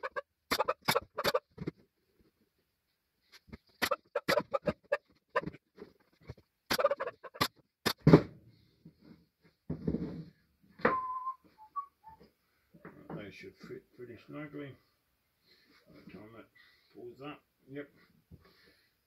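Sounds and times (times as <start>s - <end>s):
short whistled tone: 10.8s - 12.3s.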